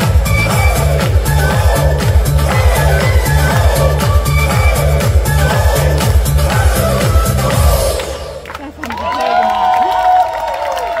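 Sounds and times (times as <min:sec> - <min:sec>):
crowd cheering and clapping: 0:00.0 - 0:11.0.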